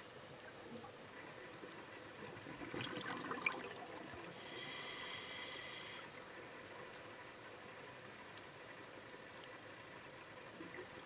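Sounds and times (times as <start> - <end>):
exhaled bubbles underwater: 2.3 - 4.4
hissing regulator inhalation: 4.4 - 6.1.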